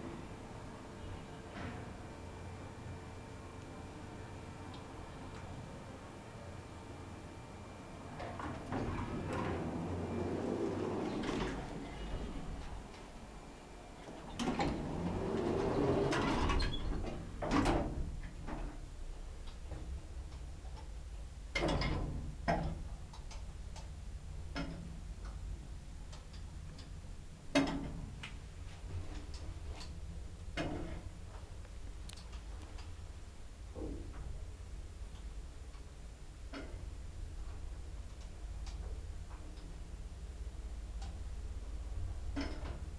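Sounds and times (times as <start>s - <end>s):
elevator drive hum: 0.0s - 42.9s
lift doors sliding with rumble: 8.0s - 18.9s, 19.6s - 23.0s, 36.4s - 42.9s
elevator passing floors clicks: 8.2s - 13.1s, 14.0s - 18.8s.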